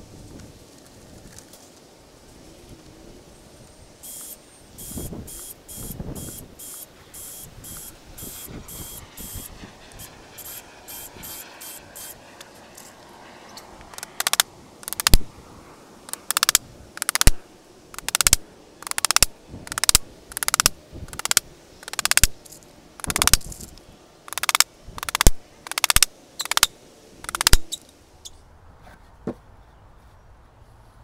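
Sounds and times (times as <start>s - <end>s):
hammer driving nails into wood: 14.0s - 15.2s, 16.1s - 17.4s, 18.0s - 22.3s, 24.3s - 26.7s.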